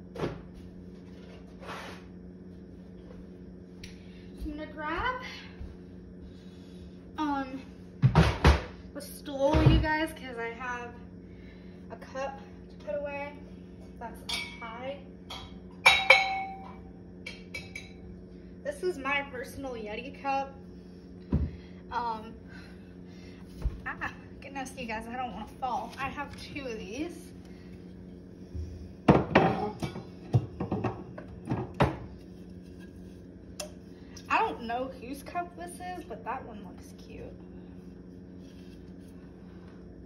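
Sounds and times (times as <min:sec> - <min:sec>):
steady low hum: 0:00.0 - 0:40.0
dishes clinking: 0:14.3 - 0:14.6, 0:15.3 - 0:18.0.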